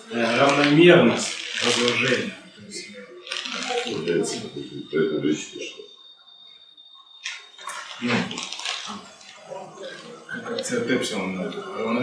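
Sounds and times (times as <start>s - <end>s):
hissy background noise: 0.0s - 12.0s.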